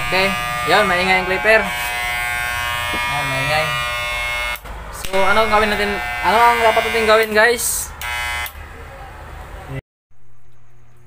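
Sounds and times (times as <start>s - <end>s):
electric hair clipper buzzing: 0.0s - 8.6s.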